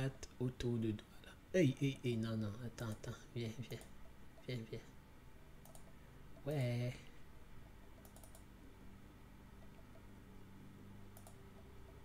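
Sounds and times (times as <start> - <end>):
faint low hum: 0.0 - 12.0
computer mouse clicks: 5.6 - 6.0, 8.0 - 8.5, 9.6 - 10.1, 11.1 - 12.0.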